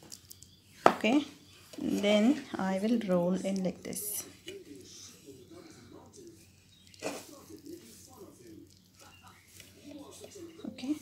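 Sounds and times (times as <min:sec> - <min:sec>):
faint distant speech: 0:00.7 - 0:11.0.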